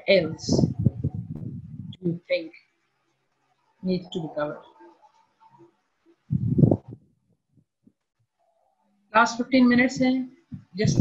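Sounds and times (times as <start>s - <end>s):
low vocal hum into microphone: 0.3s - 2.1s.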